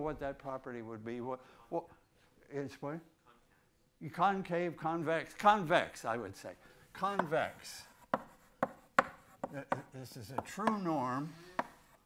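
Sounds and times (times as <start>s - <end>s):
chalk tapping on blackboard: 7.0s - 12.0s.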